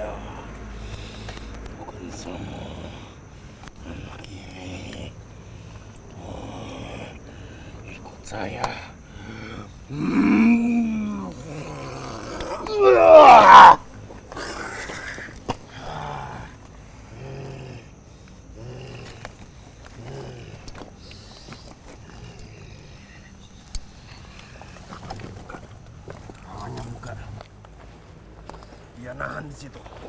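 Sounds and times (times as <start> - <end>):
man moaning and crying out: 9.2 - 18.0.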